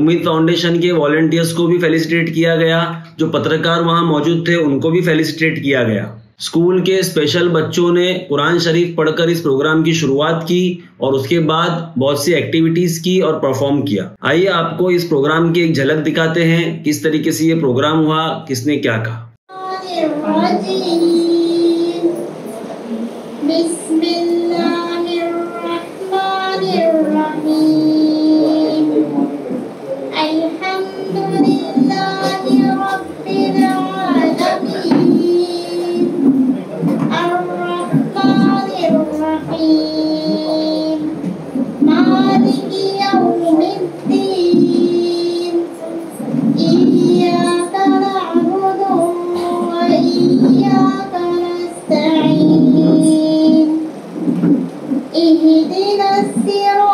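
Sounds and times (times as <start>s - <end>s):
girl singing through microphone: 19.5s - 56.9s.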